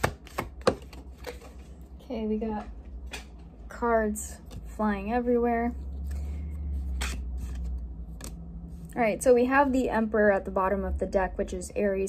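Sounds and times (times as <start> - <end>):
cards snapping and rustling: 0.0 - 1.5
low hum: 1.7 - 12.0.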